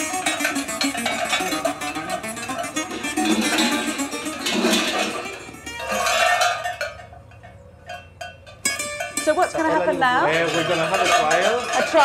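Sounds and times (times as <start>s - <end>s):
guitar music: 0.0s - 6.1s, 8.6s - 12.0s
metal bells clanking: 0.0s - 12.0s.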